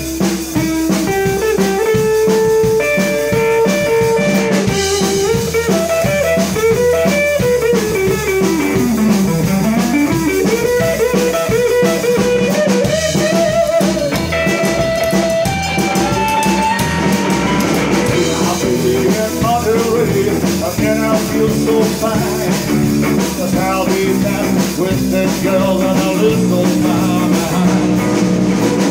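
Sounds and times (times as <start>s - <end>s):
drum kit: 0.0s - 28.9s
electric guitar lead line: 0.0s - 28.9s
upright double bass: 0.0s - 28.9s.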